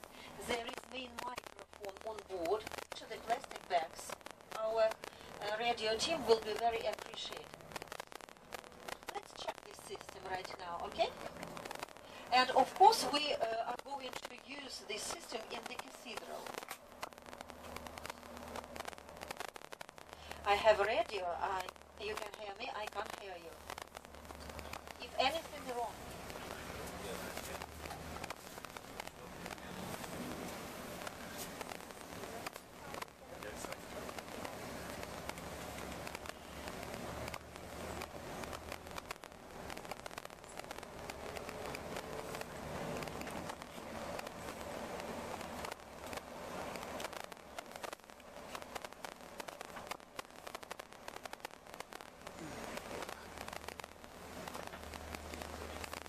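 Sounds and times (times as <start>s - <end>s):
bus engine and road rumble: 0.0s - 19.3s, 20.3s - 50.6s, 52.1s - 56.0s
small crackles and clicks: 0.0s - 56.0s.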